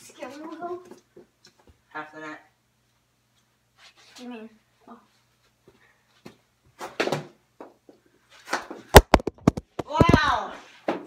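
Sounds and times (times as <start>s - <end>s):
phone knocked over: 9.0s - 9.8s.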